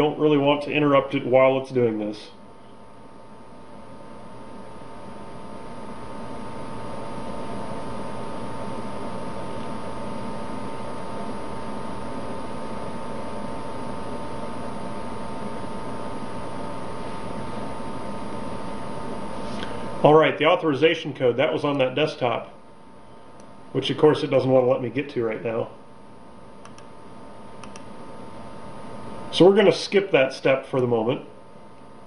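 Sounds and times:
faint high hum: 0:00.0 - 0:32.0.

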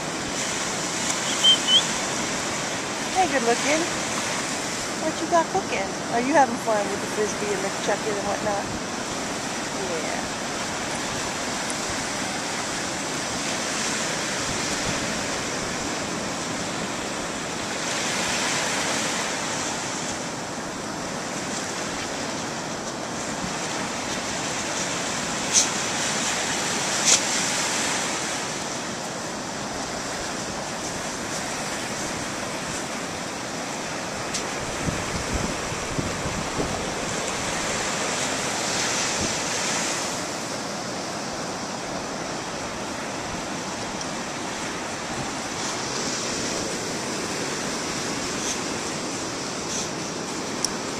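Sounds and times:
ocean surf on beach: 0:00.0 - 0:50.9
wind on microphone: 0:29.6 - 0:50.9.

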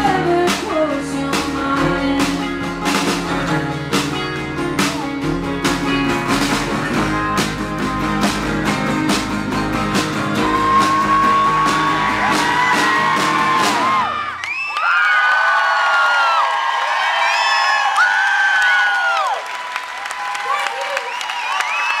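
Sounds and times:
folk-rock band playing: 0:00.0 - 0:14.5
drum strikes: 0:01.4 - 0:14.2
audience cheering and whooping: 0:10.3 - 0:22.0.

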